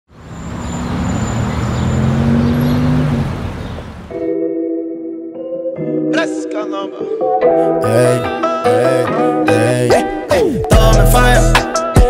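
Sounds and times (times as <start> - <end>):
street traffic noise: 0.1 - 4.3
vehicle engine running: 0.2 - 4.2.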